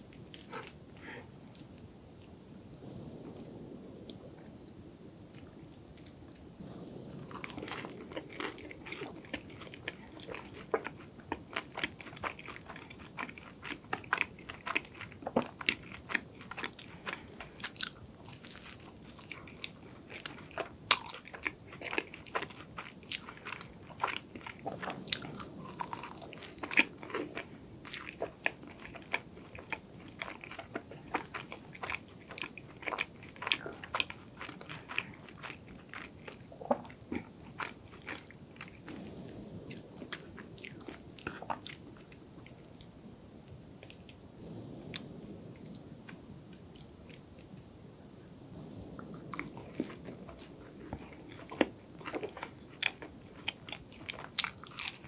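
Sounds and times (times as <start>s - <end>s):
chewing crunchy pastry: 0.1s - 2.3s, 5.4s - 39.0s, 39.7s - 42.9s, 48.7s - 55.0s.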